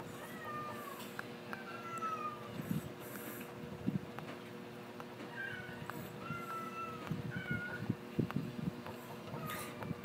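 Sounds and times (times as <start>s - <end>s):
high thin animal cries: 0.0s - 2.9s, 5.3s - 8.0s, 9.2s - 10.0s
faint steady hum: 0.0s - 10.0s.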